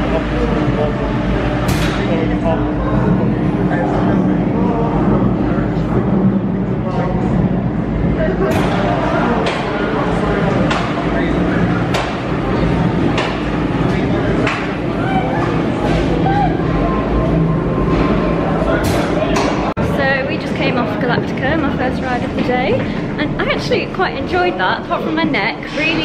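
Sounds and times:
people talking: 0:00.0 - 0:26.0.

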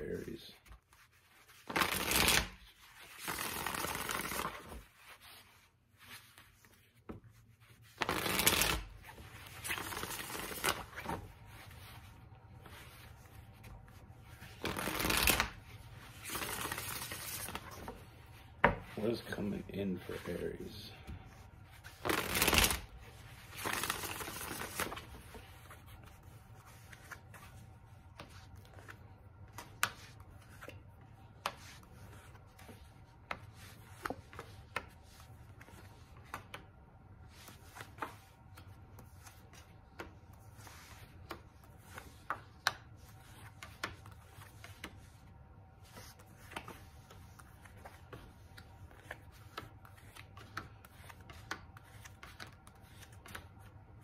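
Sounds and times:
cards being shuffled: 0:00.2 - 0:54.0.

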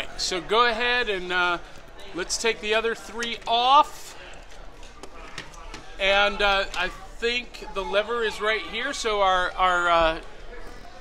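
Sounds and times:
murmur of distant voices: 0:00.0 - 0:11.0.

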